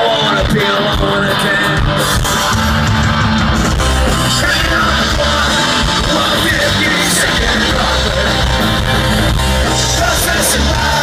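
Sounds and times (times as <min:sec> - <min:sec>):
punk rock band playing live: 0:00.0 - 0:11.0.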